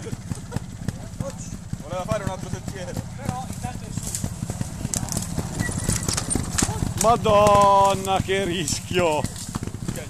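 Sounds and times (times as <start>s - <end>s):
motorcycle engine running at low revs: 0.0s - 10.0s.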